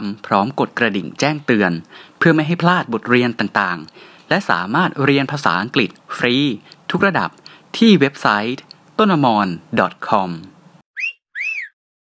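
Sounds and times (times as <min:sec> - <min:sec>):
person speaking: 0:00.0 - 0:10.6
whistle-like chirps: 0:11.0 - 0:11.8.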